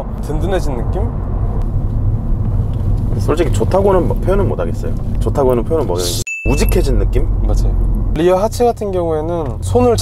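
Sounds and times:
road and engine rumble in car: 0:00.0 - 0:10.0.

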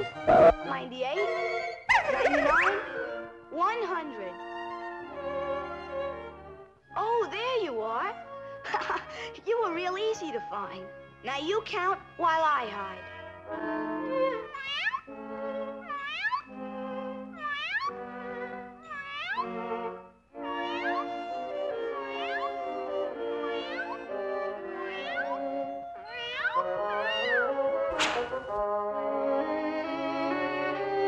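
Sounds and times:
orchestral cartoon score: 0:00.0 - 0:31.0
cartoon kitten meowing: 0:14.5 - 0:15.1, 0:15.8 - 0:16.5, 0:17.4 - 0:18.0, 0:18.8 - 0:19.5, 0:20.5 - 0:21.1, 0:22.0 - 0:22.6, 0:23.4 - 0:24.1, 0:24.8 - 0:27.6
sharp hit: 0:27.9 - 0:28.6.

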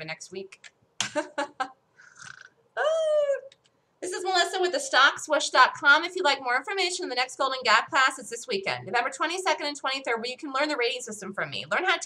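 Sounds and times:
high-pitched vocal cry: 0:02.2 - 0:03.5.

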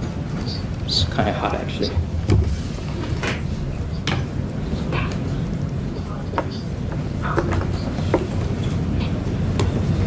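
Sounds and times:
low room rumble: 0:00.0 - 0:10.0.

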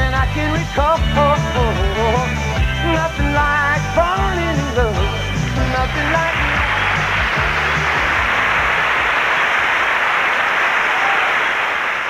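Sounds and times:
country band playing: 0:00.0 - 0:09.0
audience applauding: 0:05.4 - 0:12.0.

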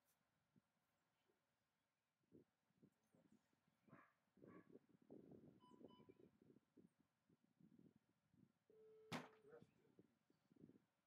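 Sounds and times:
faint steady beep: 0:05.6 - 0:06.2, 0:08.7 - 0:09.1.

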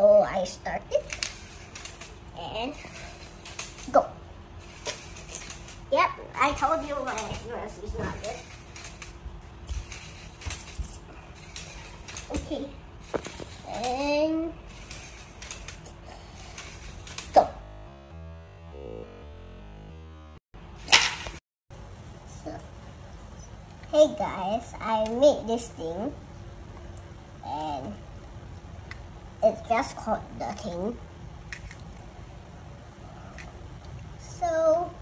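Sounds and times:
child speaking: 0:00.0 - 0:01.2, 0:02.3 - 0:03.2, 0:03.8 - 0:04.2, 0:05.9 - 0:08.5, 0:12.3 - 0:12.8, 0:13.6 - 0:14.6, 0:22.3 - 0:22.6, 0:23.9 - 0:26.2, 0:27.4 - 0:28.0, 0:29.4 - 0:31.0, 0:34.2 - 0:35.0
toy robot motor: 0:00.9 - 0:17.7.

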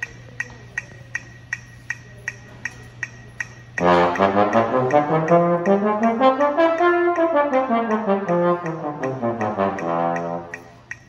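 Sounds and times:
low steady hum: 0:00.0 - 0:11.0
metronome clicking: 0:00.0 - 0:11.0.

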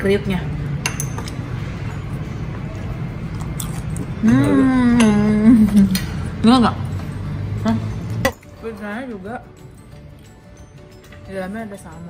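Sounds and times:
restaurant room noise: 0:00.0 - 0:12.0
crunching of chewing crispy skin: 0:03.3 - 0:04.1.

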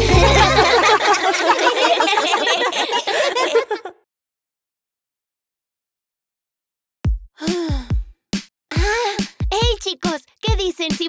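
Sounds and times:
cartoon child sighing: 0:07.4 - 0:08.0, 0:08.7 - 0:09.3.

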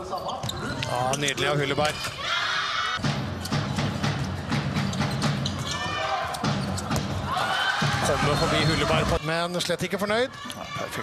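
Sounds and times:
sports hall crowd noise: 0:00.0 - 0:11.0.

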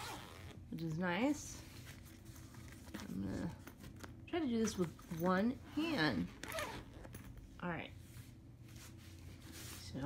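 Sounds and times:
soft rustle: 0:01.4 - 0:10.0.

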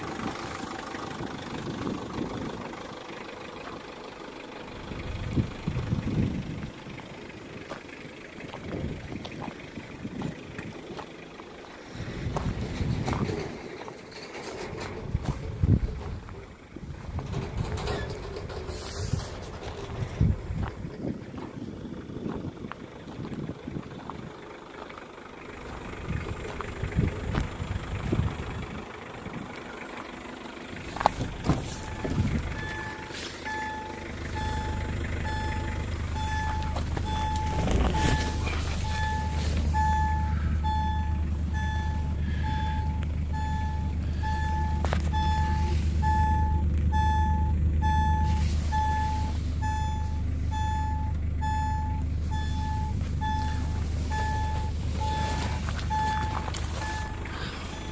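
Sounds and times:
van warning chime beeping: 0:00.0 - 0:13.2, 0:24.7 - 0:57.9
van engine idling: 0:00.0 - 0:57.9.

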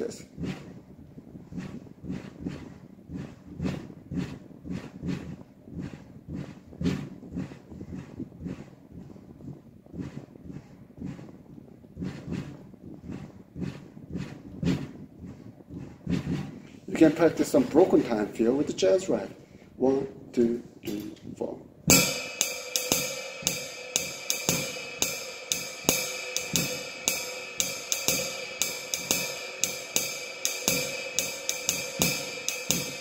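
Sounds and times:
soft bass drum: 0:00.0 - 0:18.2, 0:21.9 - 0:33.0
stick strokes on ride cymbal: 0:21.9 - 0:33.0.

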